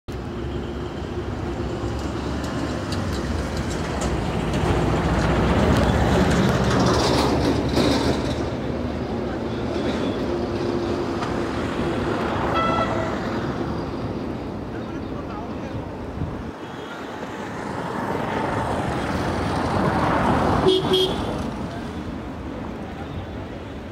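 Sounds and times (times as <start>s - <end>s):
road traffic rumble: 0.1s - 23.9s.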